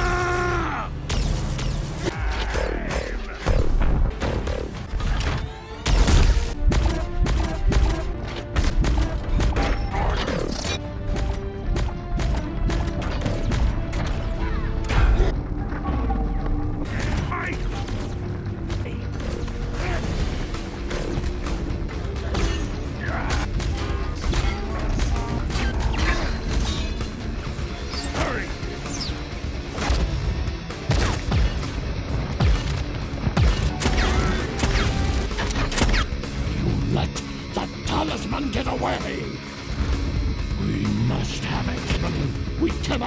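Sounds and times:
film music score: 0.0 - 43.0.

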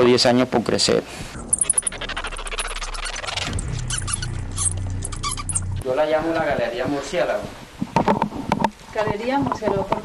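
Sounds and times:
bats squeaking: 1.4 - 5.8.

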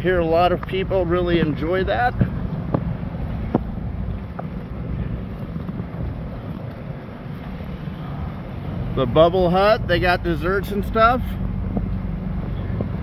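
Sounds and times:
wind noise on microphone: 0.0 - 9.0
engine hum and rumble: 0.0 - 13.0.

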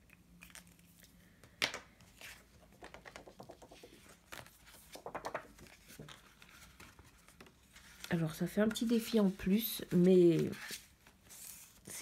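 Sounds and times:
plastic sleeve and paper crinkling: 4.1 - 12.0.

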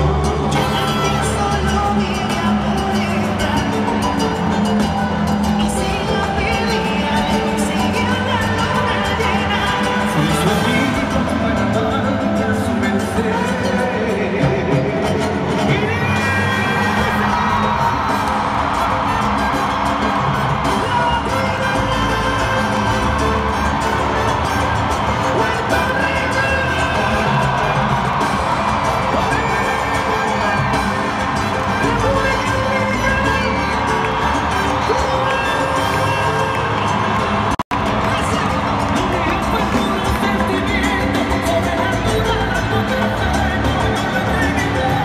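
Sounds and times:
crowd cheering and shouting: 0.0 - 45.0
live salsa band playing: 0.0 - 45.0.

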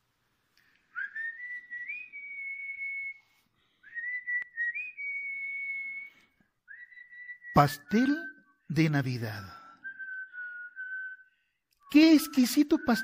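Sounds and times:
person whistling slow tune: 0.6 - 13.0.

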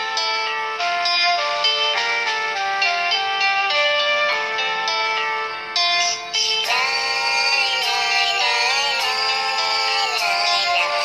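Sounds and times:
pop song over phone loudspeaker: 0.0 - 11.0.

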